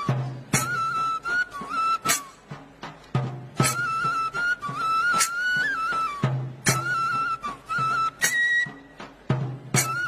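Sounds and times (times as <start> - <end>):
flute melody: 0.0 - 10.0.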